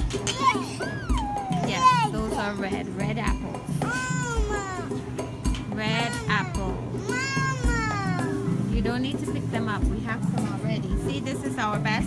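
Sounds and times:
toddler whining cries: 0.0s - 2.8s, 3.7s - 8.6s
background music with beat: 0.0s - 12.0s.

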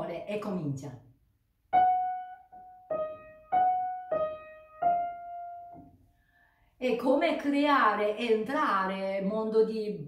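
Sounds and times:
upright piano slow melody: 1.7s - 6.0s.

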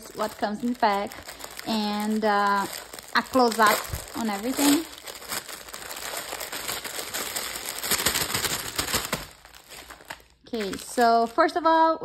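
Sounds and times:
plastic bag crinkling: 0.0s - 11.8s.

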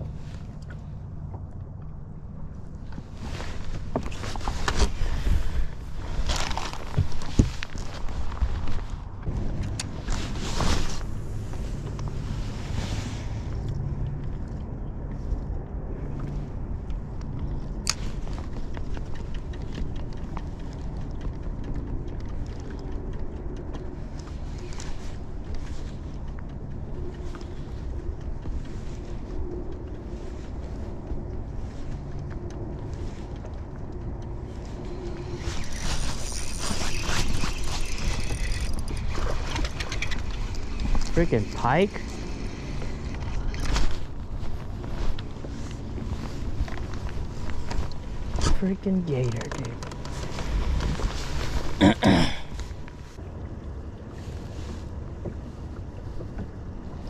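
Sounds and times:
wind rumble on microphone: 0.0s - 57.0s.

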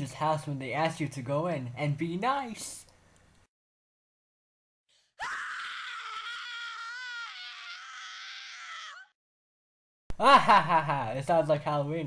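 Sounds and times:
high-pitched scream: 5.2s - 9.1s.

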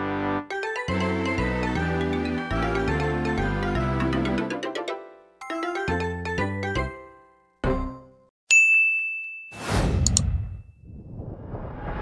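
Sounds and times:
bright high ding: 8.5s - 9.8s
whoosh: 9.6s - 12.0s.

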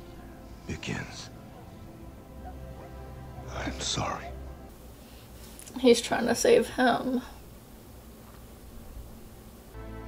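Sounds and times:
low steady music score: 0.0s - 4.8s, 9.7s - 10.0s
whispered spoken line: 0.6s - 1.3s.

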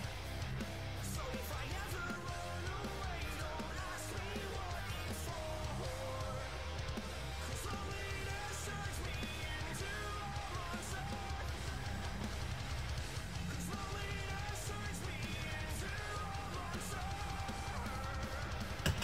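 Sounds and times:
rock music with singing: 0.0s - 19.0s.

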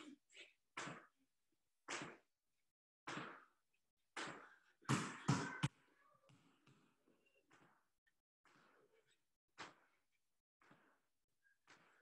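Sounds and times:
basketball bouncing on wooden floor: 4.2s - 5.7s.

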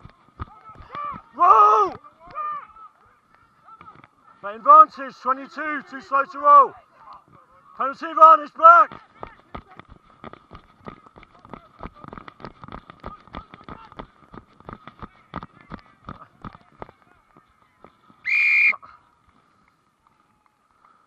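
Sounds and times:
footsteps running on grass: 8.5s - 18.3s
referee's whistle blast: 18.3s - 18.8s.

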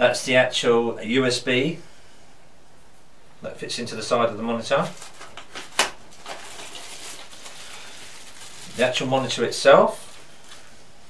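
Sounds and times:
plastic bag rustling: 4.8s - 10.9s.

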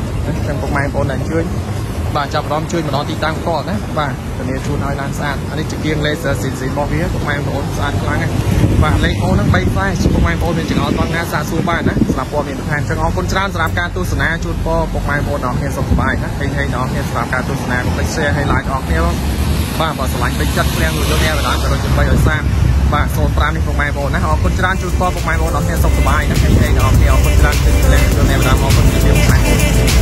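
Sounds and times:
person talking: 0.0s - 30.0s
steady low rumble: 0.0s - 30.0s.

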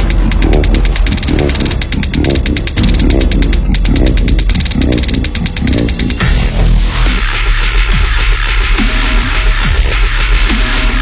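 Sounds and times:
fast hi-hats: 0.0s - 11.0s
growling wobble bass synth: 0.0s - 11.0s
heavy sub-bass: 0.0s - 11.0s.

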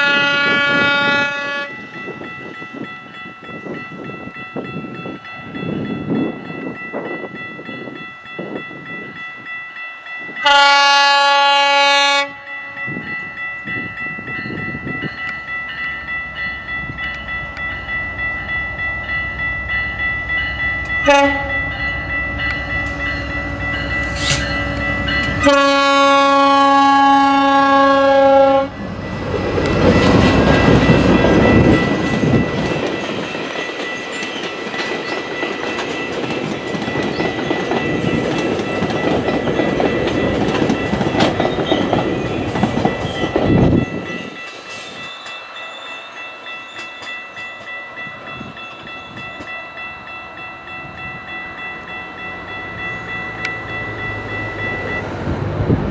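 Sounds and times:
train horn blasts: 0.0s - 1.9s, 10.4s - 13.0s, 21.0s - 28.8s
wheel and rail rumble: 12.8s - 55.9s
train wheels clattering: 29.2s - 49.6s.

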